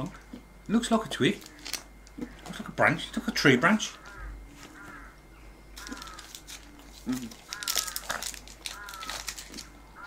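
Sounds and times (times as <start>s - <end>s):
bird calling faintly: 3.8s - 10.0s.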